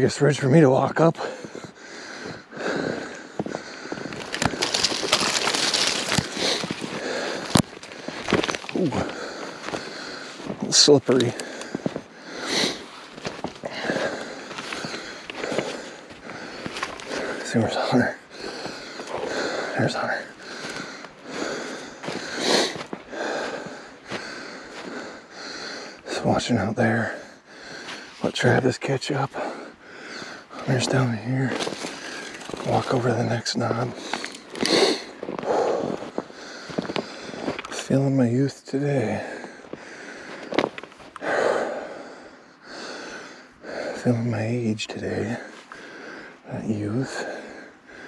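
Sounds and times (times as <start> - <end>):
man breathing hard: 1.2 - 28.5, 29.1 - 32.7, 33.7 - 37.8, 39.0 - 44.1, 45.2 - 48.0.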